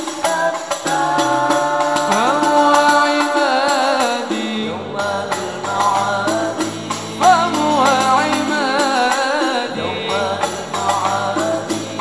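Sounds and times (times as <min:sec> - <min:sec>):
frame drums beaten: 0:00.0 - 0:12.0
man singing into a microphone: 0:00.0 - 0:12.0
men singing: 0:00.0 - 0:12.0.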